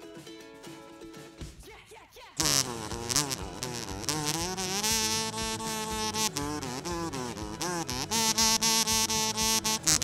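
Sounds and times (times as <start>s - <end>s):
backing track with steady beat: 2.4s - 10.0s
kazoo playing melody: 2.4s - 10.0s.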